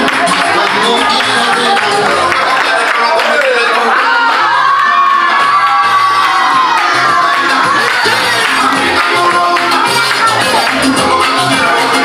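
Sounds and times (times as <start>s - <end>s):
dance music with bass line: 0.0s - 12.0s
party guests cheering: 0.0s - 12.0s
long high shout: 3.7s - 8.6s.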